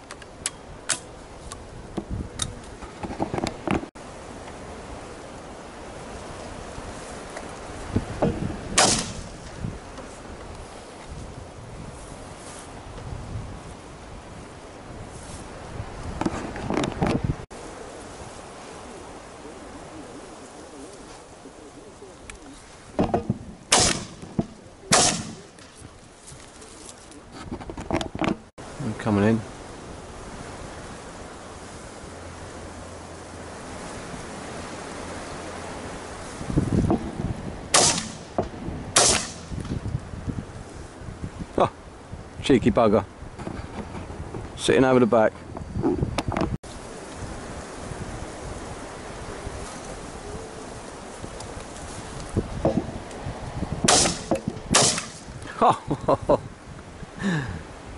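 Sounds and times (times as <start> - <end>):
wind noise: 0.0 - 57.9
shotgun shots: 8.8 - 9.4, 23.7 - 25.5, 37.7 - 38.4, 39.0 - 39.5, 53.9 - 55.3
rustling of netting: 22.0 - 27.5, 49.0 - 55.4.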